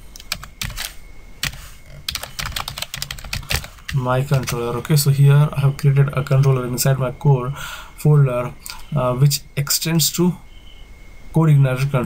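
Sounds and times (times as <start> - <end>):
keyboard typing clicks: 0.2 - 4.6.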